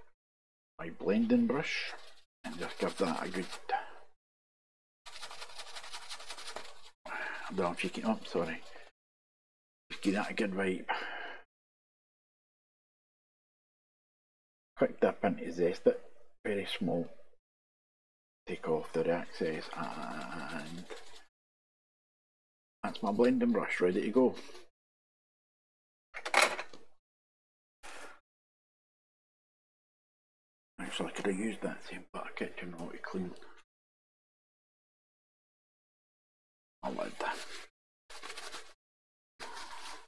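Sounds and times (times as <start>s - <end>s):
kitchen paper rustling and crackling: 5.1s - 8.9s, 36.9s - 38.8s, 39.4s - 40.0s.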